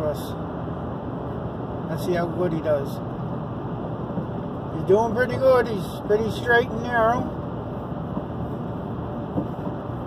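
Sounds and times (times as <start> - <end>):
car engine hum: 0.0 - 10.0
road and tyre noise: 0.0 - 10.0.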